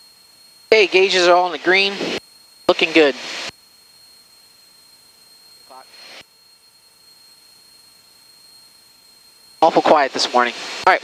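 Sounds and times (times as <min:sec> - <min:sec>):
headset intercom hiss and whine: 0:00.0 - 0:11.0.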